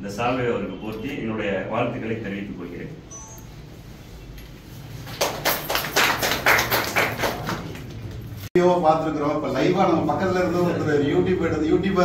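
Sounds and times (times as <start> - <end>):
people clapping: 5.0 - 8.5.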